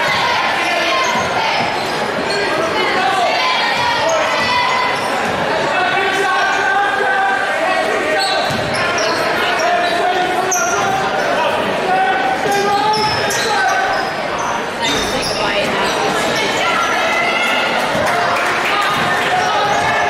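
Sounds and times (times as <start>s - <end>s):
sneaker squeaks: 0.0s - 3.0s, 3.7s - 5.4s, 8.1s - 11.4s, 12.4s - 17.0s
crowd talking and calling out: 0.0s - 20.0s.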